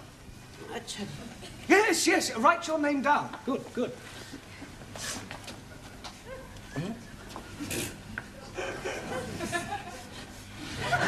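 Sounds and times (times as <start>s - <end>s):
faint murmuring: 5.7s - 10.6s
audience laughter: 8.6s - 11.0s.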